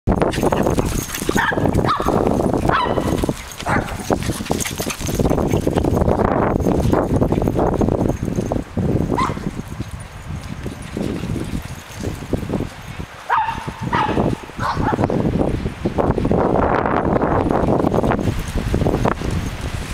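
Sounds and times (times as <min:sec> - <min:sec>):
small dogs barking: 0:00.6 - 0:04.9, 0:09.1 - 0:09.5, 0:13.3 - 0:15.1.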